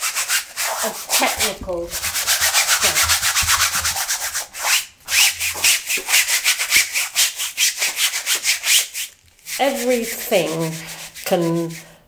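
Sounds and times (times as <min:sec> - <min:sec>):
paintbrush scrubbing a board: 0:00.0 - 0:11.9.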